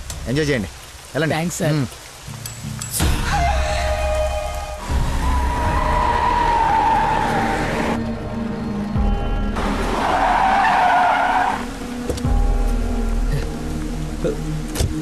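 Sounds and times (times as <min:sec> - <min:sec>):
film score music: 0:00.0 - 0:15.0
car tyres skidding and squealing: 0:04.8 - 0:08.0, 0:09.6 - 0:11.8.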